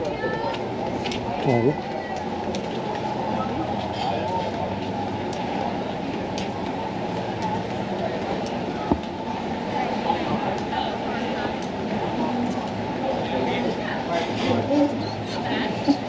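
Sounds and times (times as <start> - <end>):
traffic rumble: 0.0 - 16.0.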